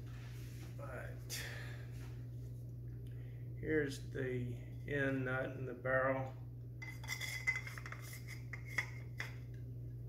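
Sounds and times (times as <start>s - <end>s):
steady low hum: 0.0s - 10.0s
gloved hands rubbing metal: 6.8s - 9.3s.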